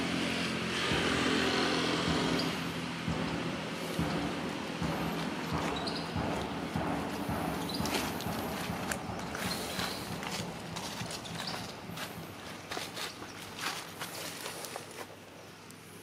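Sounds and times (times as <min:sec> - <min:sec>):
footsteps in dry leaves: 0:00.7 - 0:15.2.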